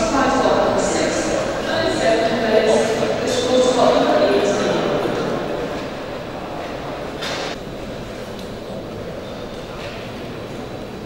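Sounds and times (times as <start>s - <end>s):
rumbling hall noise: 0.0s - 11.0s.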